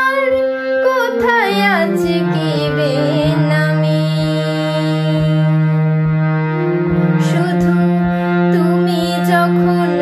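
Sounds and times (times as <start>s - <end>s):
sustained accompaniment drone: 0.0s - 10.0s.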